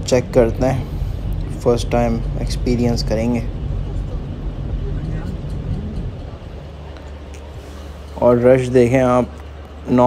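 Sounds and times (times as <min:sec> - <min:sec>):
engine and road rumble: 0:00.0 - 0:10.0
steady low hum: 0:00.0 - 0:10.0.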